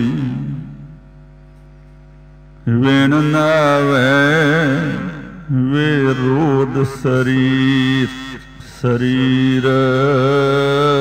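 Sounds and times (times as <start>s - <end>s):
person chanting melodically: 0.0s - 1.0s, 2.6s - 11.0s
faint steady hum: 0.0s - 11.0s.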